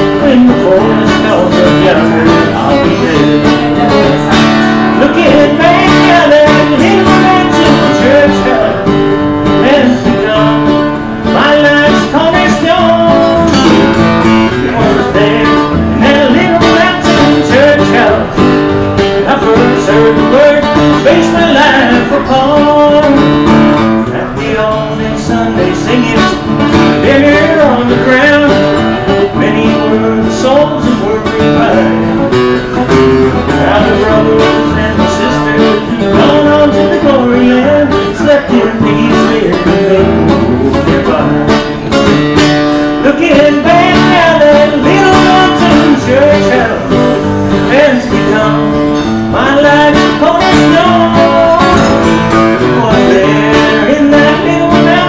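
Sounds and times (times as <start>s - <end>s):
acoustic guitar strummed: 0.0s - 55.0s.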